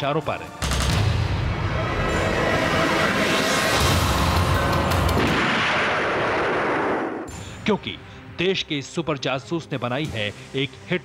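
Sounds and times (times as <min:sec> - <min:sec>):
dramatic noise effect with rumble: 0:00.6 - 0:07.3.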